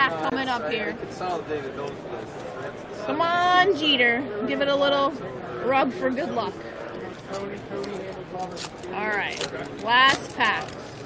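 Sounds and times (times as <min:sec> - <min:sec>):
foil wrapper tearing and crinkling: 0:07.0 - 0:11.0.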